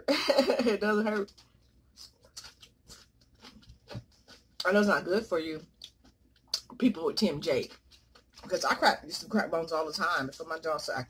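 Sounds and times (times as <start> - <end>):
mouth chewing and crunching: 1.0 - 8.7.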